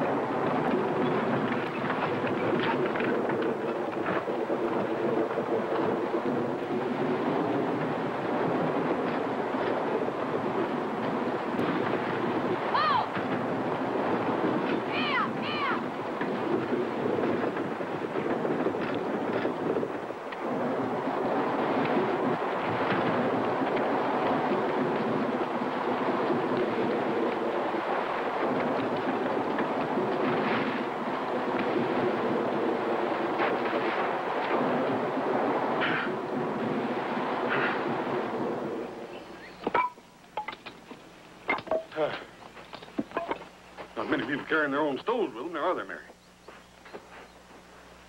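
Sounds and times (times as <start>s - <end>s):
galloping horses and wheels rumbling: 0.0s - 48.0s.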